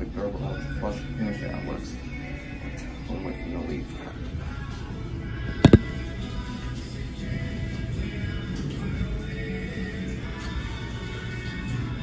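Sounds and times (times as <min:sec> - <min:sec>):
background music: 0:00.2 - 0:12.0
phone knocking on ceramic lid: 0:05.6 - 0:05.8.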